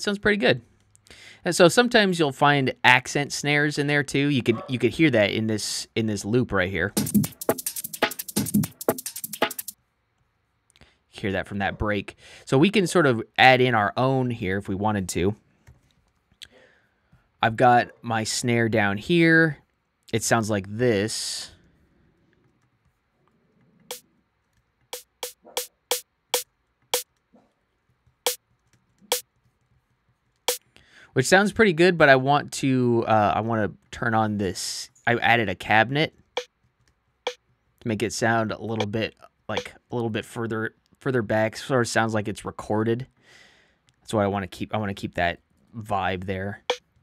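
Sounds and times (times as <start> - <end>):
breakbeat snare and hi-hat hits: 6.9 - 9.8, 24.9 - 26.0.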